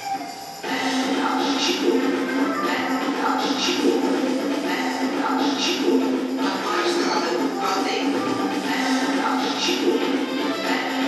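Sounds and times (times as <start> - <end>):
pop song over loudspeakers: 0.0 - 11.0.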